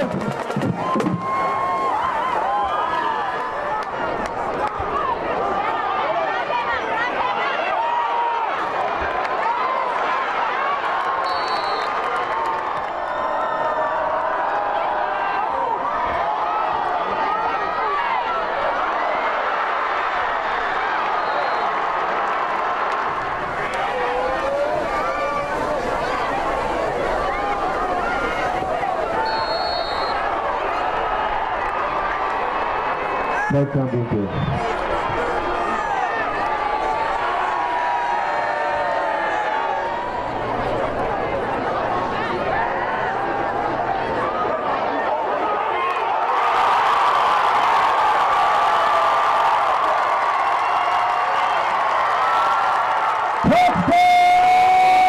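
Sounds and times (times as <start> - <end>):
stadium crowd cheering and yelling: 0.0 - 55.0.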